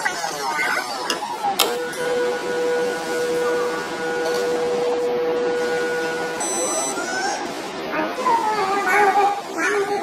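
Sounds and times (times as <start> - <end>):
air pump humming: 1.6 - 7.8
high-pitched tone: 1.8 - 7.5.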